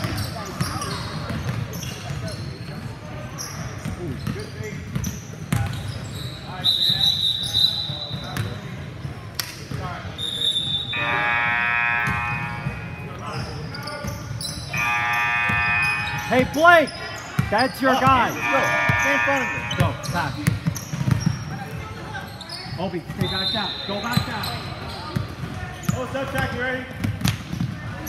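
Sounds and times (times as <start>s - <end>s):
voices echoing in a hall: 0.0s - 28.0s
referee's whistle: 6.2s - 8.4s, 10.2s - 21.4s, 23.2s - 25.0s
electric buzzer: 11.0s - 13.0s, 14.8s - 16.4s, 18.2s - 19.9s
basketball dribbling: 17.3s - 21.5s.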